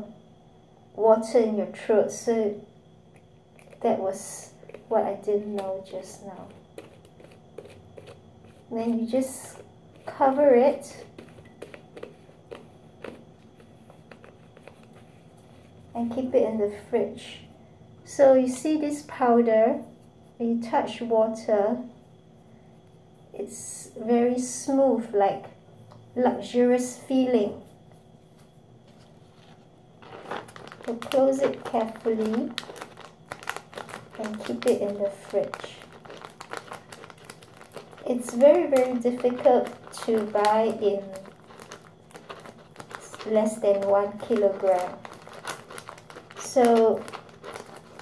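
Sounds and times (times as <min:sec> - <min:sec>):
foil pouch crinkling: 0:05.6 - 0:15.3, 0:28.9 - 0:48.0.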